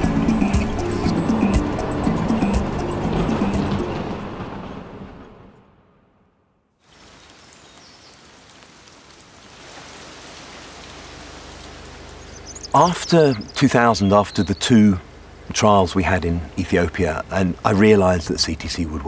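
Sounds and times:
music: 0:00.0 - 0:04.5
rain falling on water and leaves: 0:06.8 - 0:19.0.

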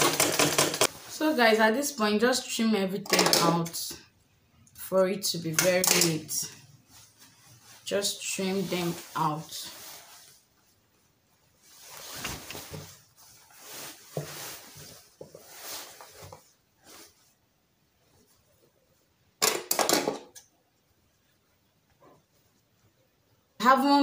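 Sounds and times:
fabric rustling: 0:06.4 - 0:19.2.

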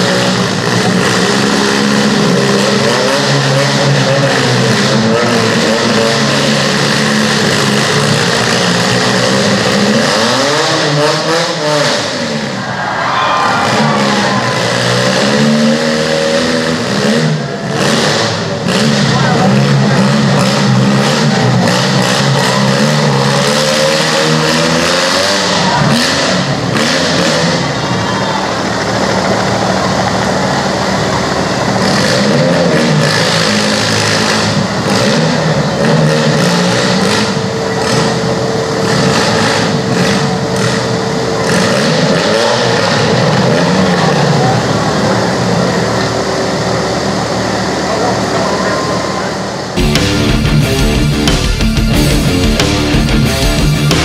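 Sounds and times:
car engines revving: 0:00.0 - 0:54.0.

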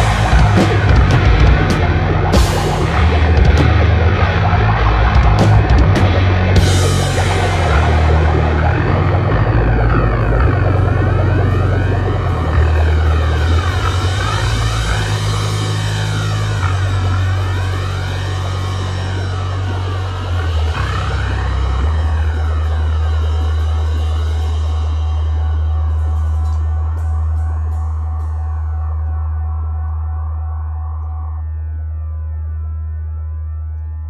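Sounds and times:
heavy rock instrumental: 0:00.0 - 0:30.2.

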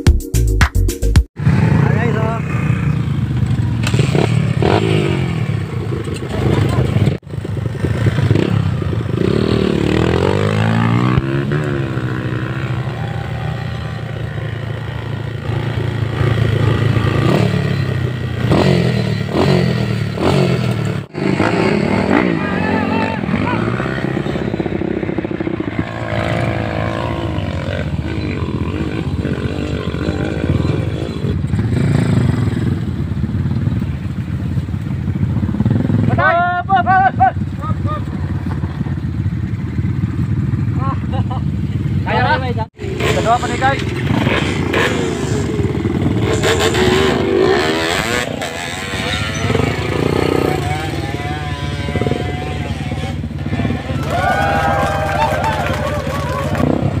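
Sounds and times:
motorcycle engine revving: 0:01.4 - 0:57.0
people shouting: 0:12.4 - 0:14.2, 0:22.1 - 0:24.1, 0:53.5 - 0:56.7.

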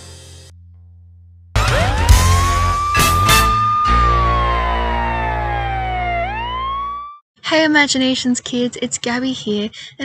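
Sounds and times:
high pitched gliding tone: 0:01.6 - 0:07.1.

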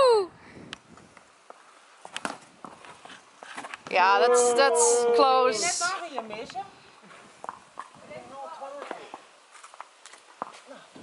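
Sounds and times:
taps and scuffs on concrete: 0:01.5 - 0:03.9, 0:08.6 - 0:11.0.

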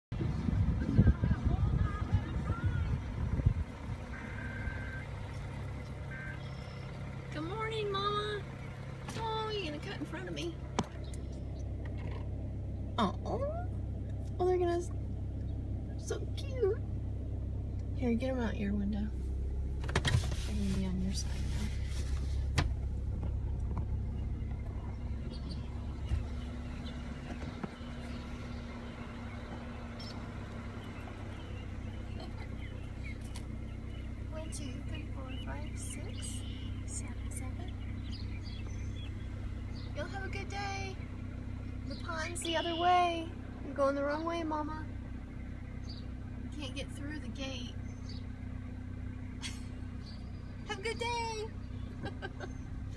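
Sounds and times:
car engine idling: 0:00.0 - 0:52.9
low rumbling and knocks: 0:19.6 - 0:30.3.

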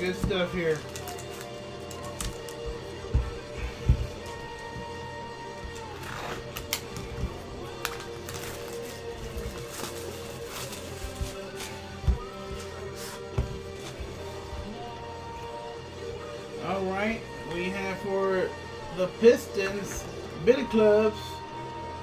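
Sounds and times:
background music with held tones: 0:00.0 - 0:22.0.

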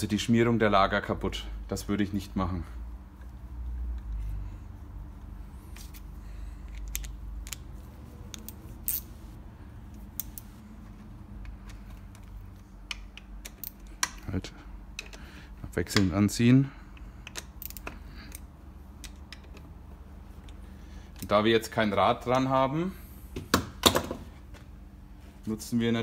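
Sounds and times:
metallic clicks of hand tools: 0:09.9 - 0:10.5, 0:17.0 - 0:18.4.

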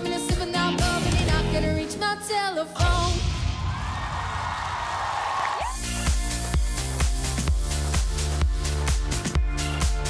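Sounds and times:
pop song backing track: 0:00.0 - 0:03.8, 0:05.7 - 0:10.0
electronic dance beat: 0:05.6 - 0:10.0.

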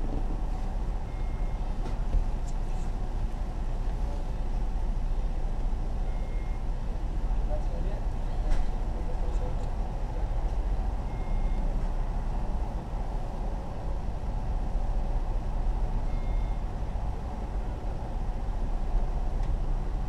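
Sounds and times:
car engine idling: 0:00.0 - 0:20.0
faint short high beeps: 0:06.0 - 0:06.6, 0:16.0 - 0:16.7.

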